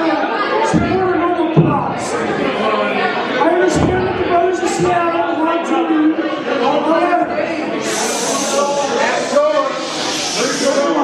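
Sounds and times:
voices talking in a hall: 0.0 - 11.0.

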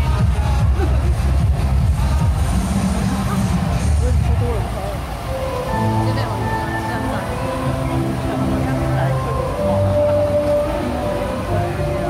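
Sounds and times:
bass-heavy music over loudspeakers: 0.0 - 12.0
crowd voices: 0.0 - 12.0.

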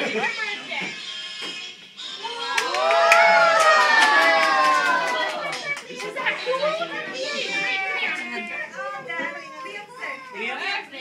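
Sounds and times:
children chattering: 5.3 - 11.0.

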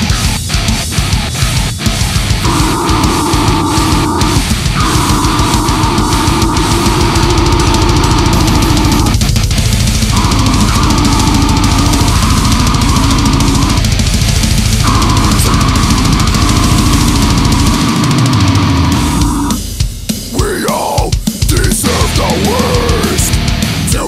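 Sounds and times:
distorted heavy guitars: 0.0 - 24.0
drums: 0.0 - 24.0.

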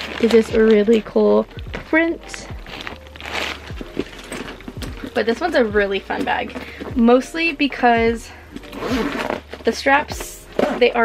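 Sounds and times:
tissue paper crinkling: 0.0 - 1.2, 2.2 - 6.9.

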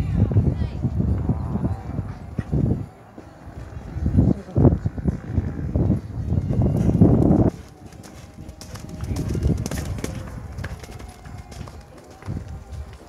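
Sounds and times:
horse hoofbeats on dirt: 2.1 - 13.0.

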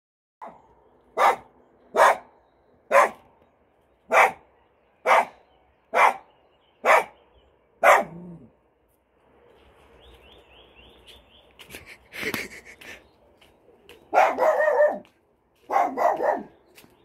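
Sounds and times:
dog barking: 0.4 - 2.3, 2.9 - 3.3, 4.1 - 7.2, 7.8 - 8.3, 14.1 - 16.6.

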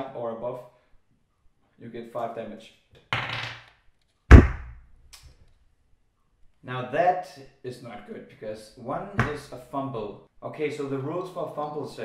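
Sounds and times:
die thudding on wooden table: 4.3 - 4.8, 9.2 - 9.5.

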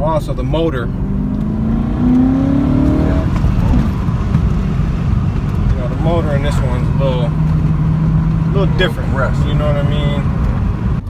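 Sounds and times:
car engine revving: 0.0 - 11.0.

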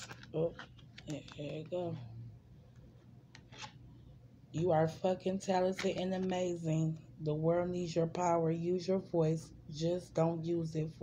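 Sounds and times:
cards being handled: 0.0 - 1.9, 3.3 - 3.8.

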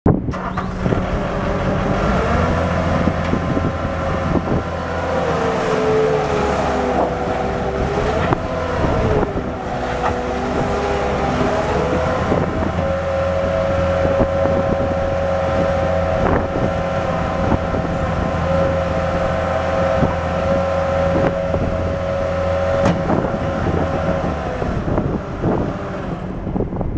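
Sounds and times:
diesel engine running: 0.1 - 26.9
hydraulic whine: 0.1 - 26.9.

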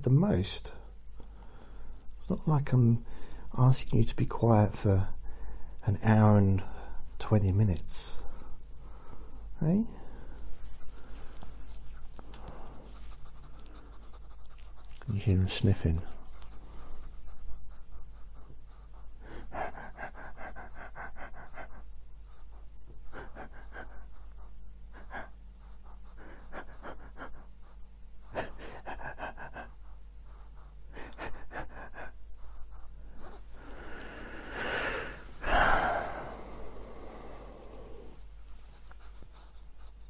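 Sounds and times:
dog breathing: 0.7 - 3.8, 4.6 - 7.2, 7.9 - 40.0
dog sniffing: 8.3 - 40.0.

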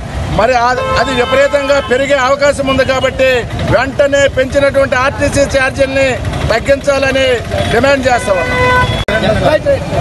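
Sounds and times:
street traffic rumble: 0.0 - 10.0
vehicle horn: 0.7 - 3.2, 7.6 - 9.3.

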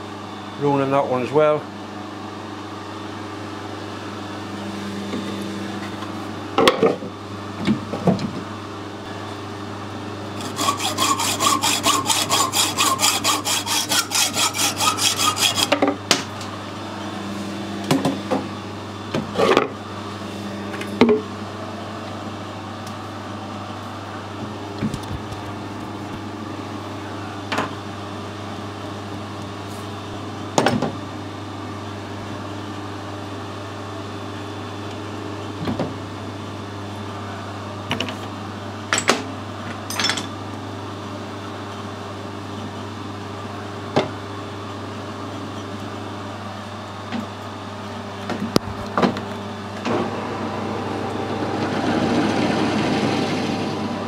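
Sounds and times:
steady background hum: 0.0 - 54.0
hacksaw cutting brass: 10.4 - 15.8.

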